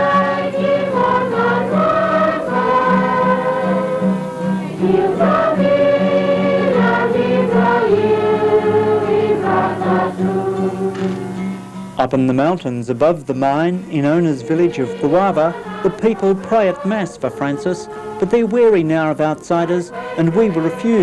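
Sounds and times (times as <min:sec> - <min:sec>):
congregation singing a hymn: 0:00.0 - 0:11.5, 0:13.6 - 0:21.0.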